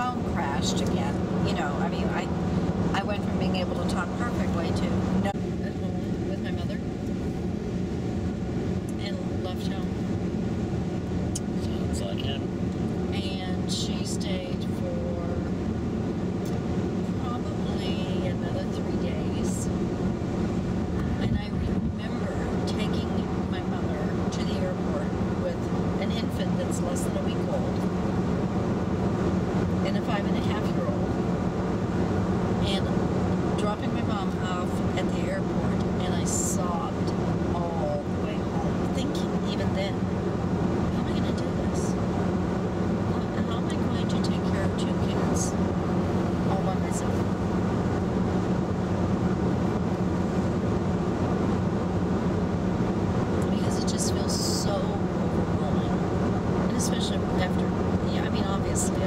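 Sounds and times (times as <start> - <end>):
car cabin road and engine noise: 0.0 - 59.0
constant low hum: 0.0 - 59.0.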